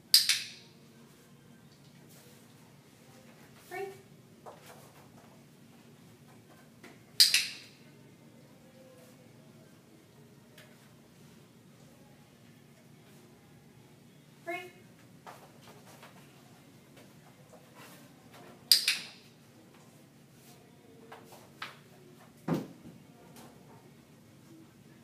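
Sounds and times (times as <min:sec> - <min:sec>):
dog-training clicker click: 0:07.2 - 0:07.6, 0:18.7 - 0:19.1
dog-training clicker clicking: 0:18.7 - 0:19.1.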